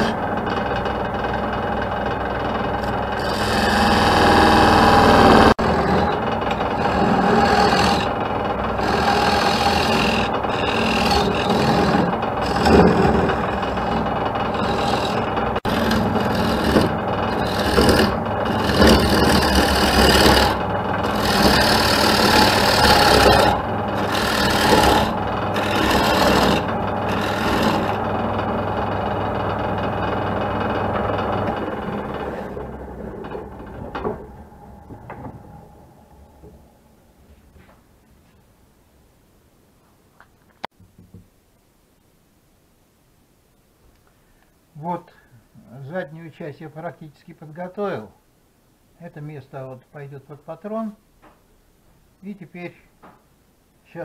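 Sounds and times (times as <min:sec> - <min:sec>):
turning tool scraping wood: 0:00.0 - 0:35.4
lathe motor hum: 0:00.0 - 0:36.7.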